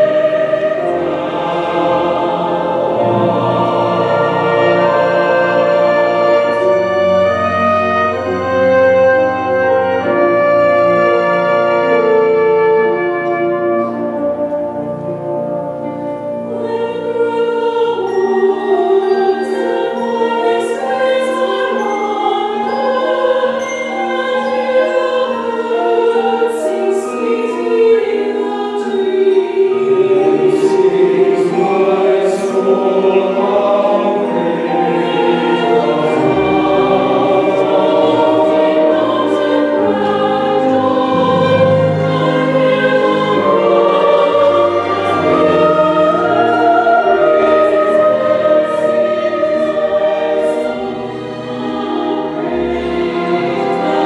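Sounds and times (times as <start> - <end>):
choir singing: 0.0 - 54.0
string ensemble: 0.0 - 54.0.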